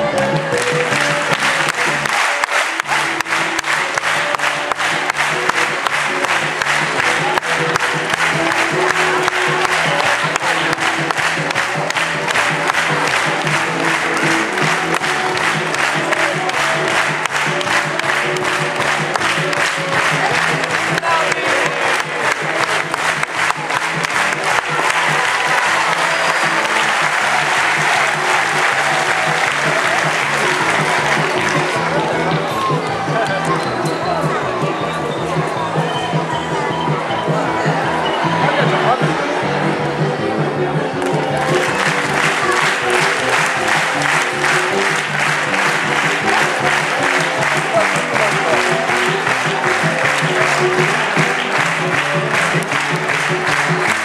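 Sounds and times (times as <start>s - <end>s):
audience applause: 0.0s - 33.6s, 40.8s - 54.0s
music playing: 0.0s - 54.0s.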